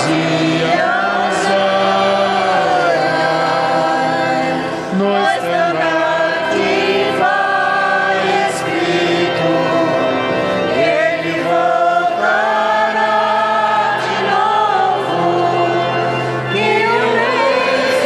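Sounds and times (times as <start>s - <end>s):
choir singing a hymn: 0.0s - 18.0s.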